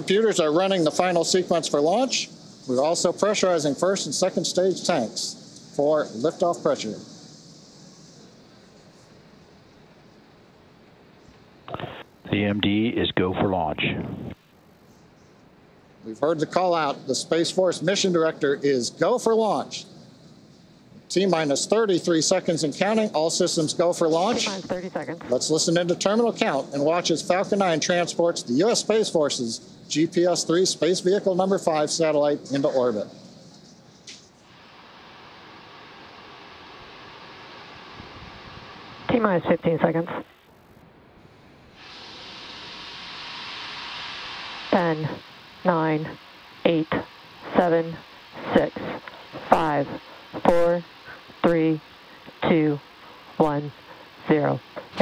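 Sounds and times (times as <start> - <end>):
faint steady hiss: 0.0 - 55.0
radio voice call-out: 11.7 - 14.4, 24.2 - 25.4, 39.1 - 40.2, 44.8 - 52.8.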